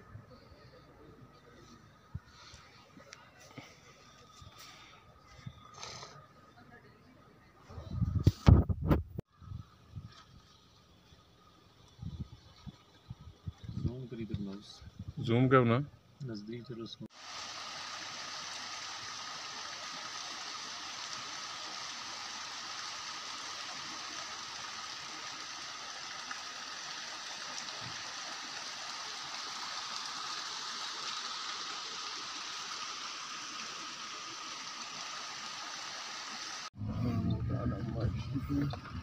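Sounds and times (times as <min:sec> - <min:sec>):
stream rushing over rocks: 0:17.1 - 0:36.7.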